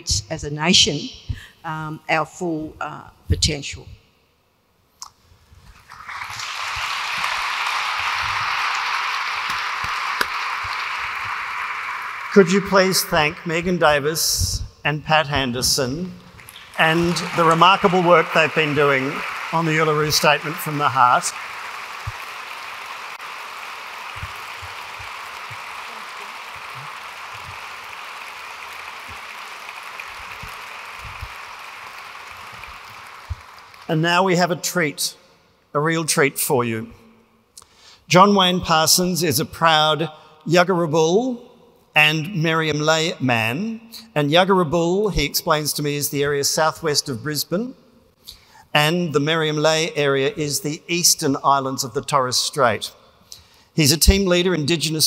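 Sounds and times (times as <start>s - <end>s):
audience applauding: 5.7s - 14.1s, 15.9s - 34.0s.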